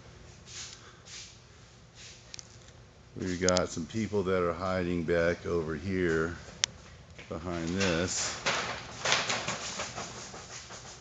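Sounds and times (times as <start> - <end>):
plastic sheeting rustling: 7.5 - 11.0.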